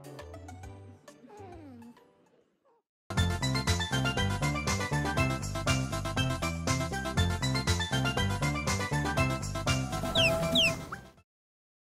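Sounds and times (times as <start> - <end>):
background music: 0.0 - 11.2
high chirp-like sounds: 10.1 - 11.0.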